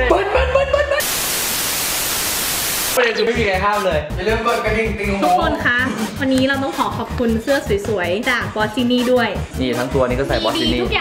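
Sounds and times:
background music: 0.0s - 1.0s, 3.0s - 11.0s
static hiss: 1.0s - 3.0s.

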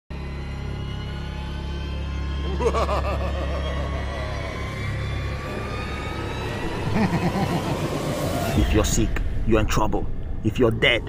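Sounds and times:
low drone with held tones: 0.1s - 10.6s.

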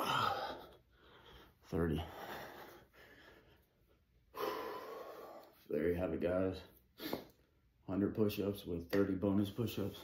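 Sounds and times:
man breathing softly: 0.0s - 5.7s.

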